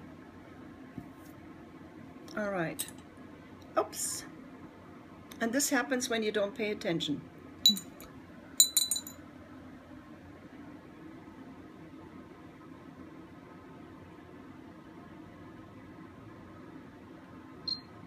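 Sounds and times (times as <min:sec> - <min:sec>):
light glass clinks: 0:07.7 - 0:08.0, 0:08.6 - 0:09.2.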